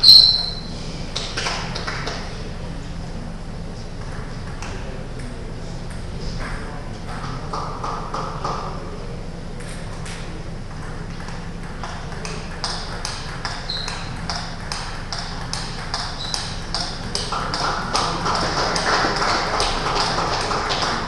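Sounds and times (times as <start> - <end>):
table tennis ball clicking: 11.1 - 20.9.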